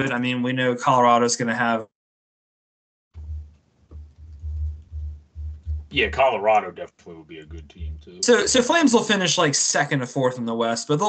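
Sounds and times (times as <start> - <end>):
low uneven rumble: 3.2 - 8.8.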